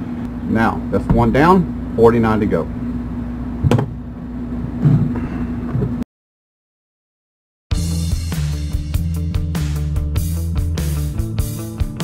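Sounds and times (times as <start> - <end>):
steady low hum: 0.0 - 6.0
knocks on a workbench: 1.1 - 1.3, 3.6 - 4.0.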